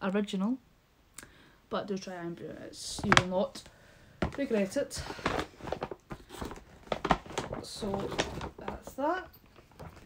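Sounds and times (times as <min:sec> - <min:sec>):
paper bag rustling and crinkling: 0:04.2 - 0:10.0.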